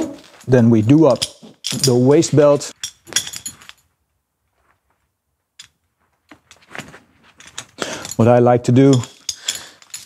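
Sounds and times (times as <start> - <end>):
harness buckles clinking and rattling: 0.0 - 3.9, 5.6 - 10.0.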